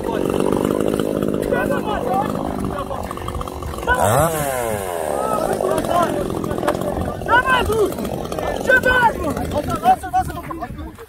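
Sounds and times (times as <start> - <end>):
chainsaw revving: 0.0 - 10.8.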